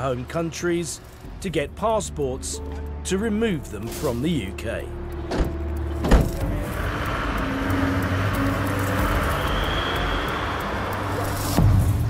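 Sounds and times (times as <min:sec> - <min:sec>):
vehicle and street noise: 0:00.0 - 0:12.0
van door slamming: 0:05.3 - 0:06.5.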